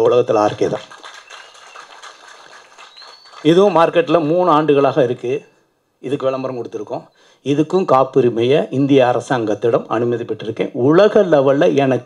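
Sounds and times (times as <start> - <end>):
man speaking into a microphone: 0.0 - 0.9, 3.4 - 12.0
low background noise: 0.0 - 12.0.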